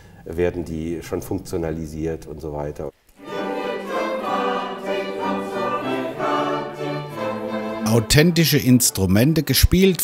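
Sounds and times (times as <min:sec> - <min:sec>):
mixed choir singing: 0:03.2 - 0:09.0
string accompaniment: 0:03.2 - 0:10.0.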